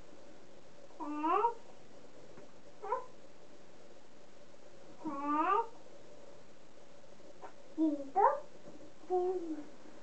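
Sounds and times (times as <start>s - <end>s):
toddler vocalizing: 1.0s - 1.6s, 2.8s - 3.1s.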